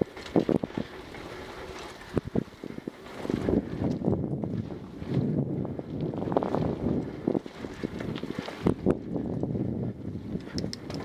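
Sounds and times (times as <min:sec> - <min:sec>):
bike knocking and rattling: 0:00.0 - 0:11.0
bike tyres rolling on dirt: 0:00.0 - 0:11.0
wind buffeting microphone: 0:00.0 - 0:11.0.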